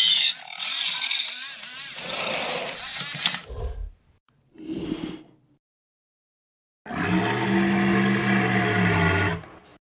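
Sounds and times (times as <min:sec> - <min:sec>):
dinosaur roar: 0:06.9 - 0:09.7.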